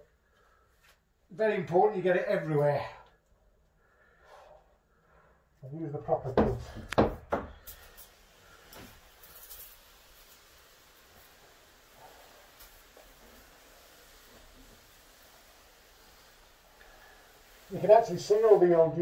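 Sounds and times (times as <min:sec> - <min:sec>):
sprayer knocking and clattering: 0:06.1 - 0:08.1.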